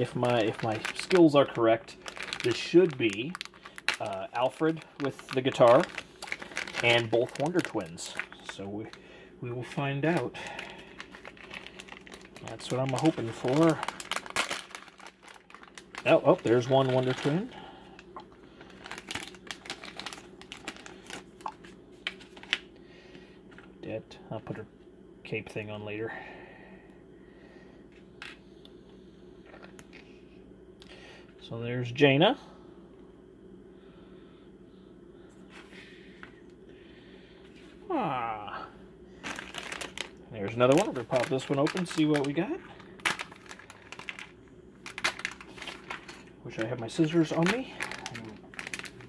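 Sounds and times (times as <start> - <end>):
plastic clicks and crinkles: 0.0 - 9.0, 10.1 - 17.4, 18.0 - 22.6, 39.2 - 49.0.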